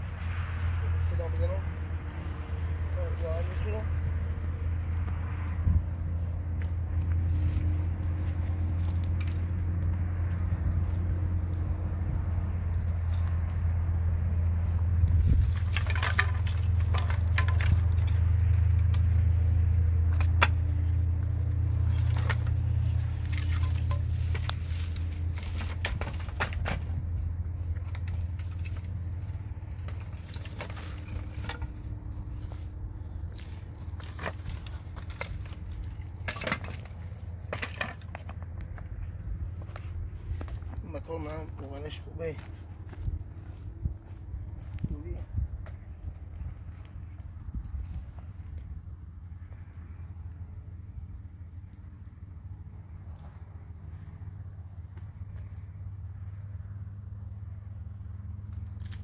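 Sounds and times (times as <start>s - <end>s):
wind rumble on microphone: 0.0s - 36.2s, 38.4s - 55.7s
footsteps on stony ground: 5.0s - 18.7s, 21.2s - 48.7s
knocks of wood and stones: 6.5s - 10.0s, 14.6s - 19.3s, 20.0s - 45.0s.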